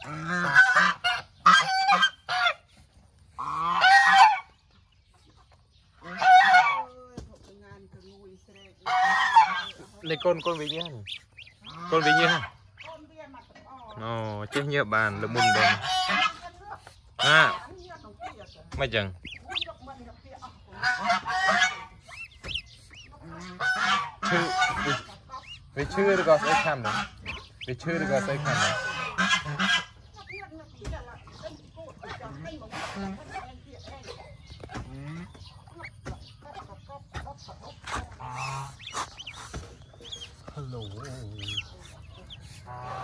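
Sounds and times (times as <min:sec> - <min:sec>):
waterfowl honking: 0:00.0 - 0:02.8, 0:03.4 - 0:04.6, 0:06.0 - 0:07.0, 0:08.6 - 0:18.6, 0:19.2 - 0:20.1, 0:20.7 - 0:30.6, 0:36.5 - 0:43.0
duckling peeps: 0:00.0 - 0:07.2, 0:07.8 - 0:43.0.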